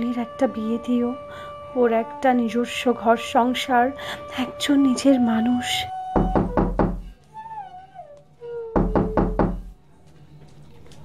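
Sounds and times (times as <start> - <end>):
gliding wind instrument melody: 0.0 - 9.4.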